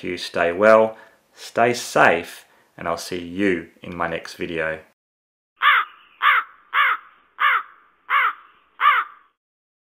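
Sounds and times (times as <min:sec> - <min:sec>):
crow cawing: 0:05.6 - 0:09.4.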